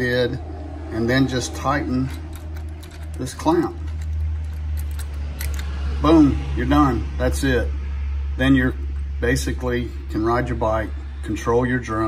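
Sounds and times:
steady low hum: 0:00.0 - 0:12.0
light plastic and metal clicks: 0:02.1 - 0:05.7.

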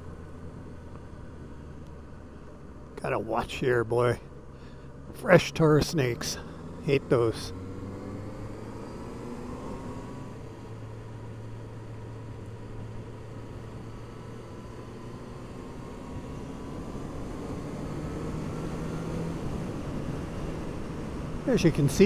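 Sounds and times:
wind and road noise: 0:00.0 - 0:22.0.

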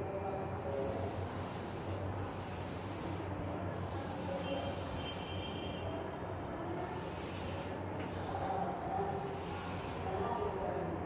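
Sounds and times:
chalk scraping on blackboard: 0:00.8 - 0:05.4.

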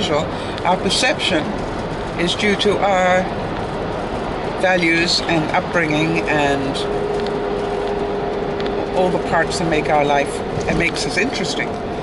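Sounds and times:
car road noise: 0:00.0 - 0:12.0
constant hum: 0:00.0 - 0:12.0.

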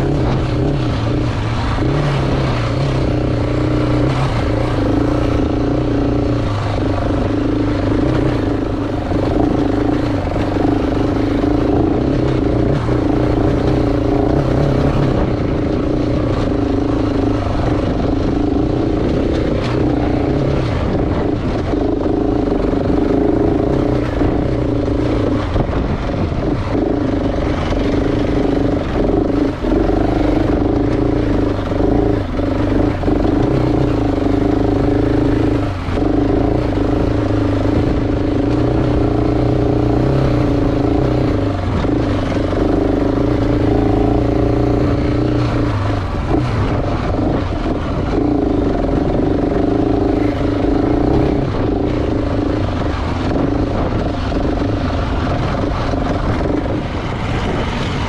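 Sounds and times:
motorcycle engine running: 0:00.0 - 0:58.0.

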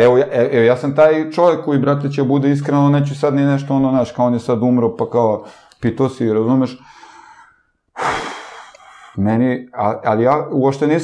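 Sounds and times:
man sighing breath: 0:06.8 - 0:09.2.

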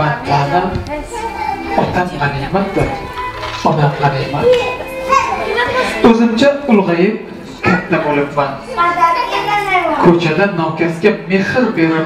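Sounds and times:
people and children talking: 0:00.0 - 0:06.7, 0:07.6 - 0:10.3.

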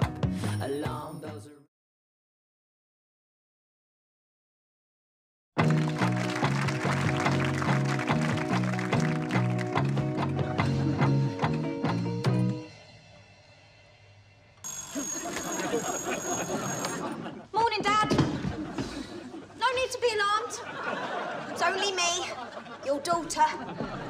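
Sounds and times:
theme song with backing music: 0:05.6 - 0:12.8
bell ringing: 0:14.6 - 0:17.2
laughter: 0:15.2 - 0:17.5, 0:18.3 - 0:19.6, 0:20.6 - 0:24.0.

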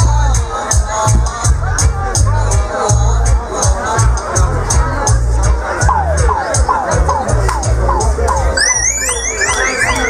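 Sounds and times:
dub reggae with deep bass: 0:00.0 - 0:10.0
dub siren zaps and wails: 0:08.4 - 0:10.0.

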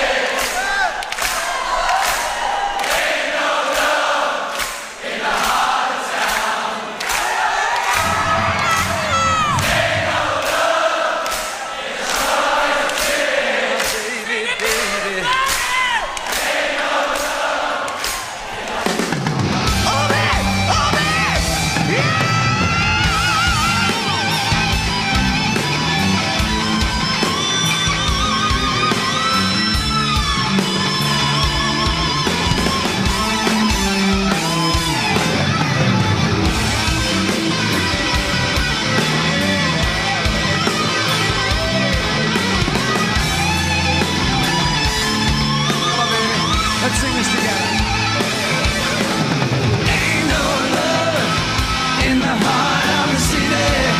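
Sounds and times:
crowd singing along: 0:00.0 - 0:01.0, 0:01.9 - 0:15.3, 0:16.0 - 0:22.8, 0:48.4 - 0:53.9
steady drum beat: 0:07.9 - 0:53.9
live rock band: 0:08.0 - 0:10.4, 0:18.1 - 0:53.9
electric guitar lead: 0:19.2 - 0:53.9.

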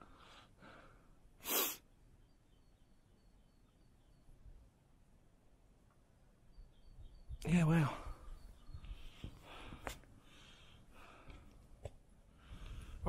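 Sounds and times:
sharp breath through nose: 0:00.0 - 0:01.9
faint outdoor background: 0:00.0 - 0:13.0.

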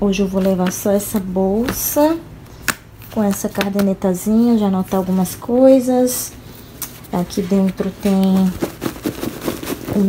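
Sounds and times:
rustling in a handbag: 0:07.0 - 0:10.0.

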